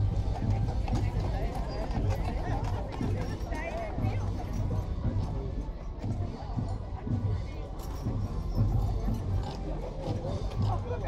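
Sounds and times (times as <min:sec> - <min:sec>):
hooves clip-clopping on pavement: 0:00.0 - 0:11.0
people talking: 0:00.0 - 0:11.0.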